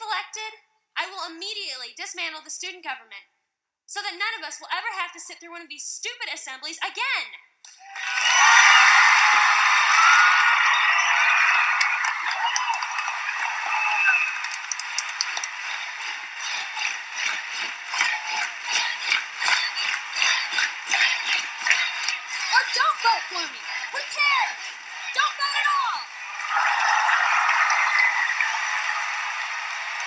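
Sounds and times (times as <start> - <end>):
crowd cheering and yelling: 7.7 - 30.0
fast clapping: 8.0 - 30.0.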